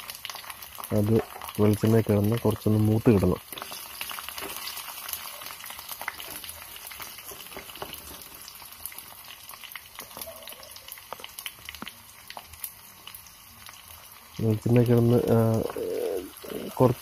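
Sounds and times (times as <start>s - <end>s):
food sizzling in hot oil: 0.0s - 17.0s.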